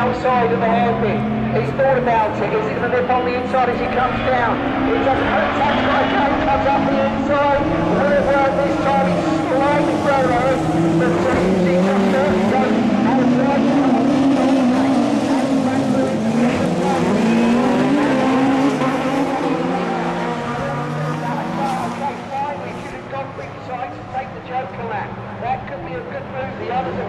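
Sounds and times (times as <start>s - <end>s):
racing car engines revving: 0.0s - 27.0s.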